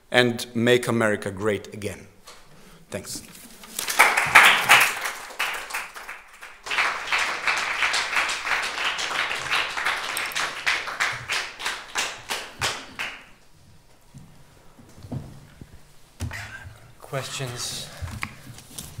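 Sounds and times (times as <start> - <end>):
audience applauding: 3.8 - 13.4.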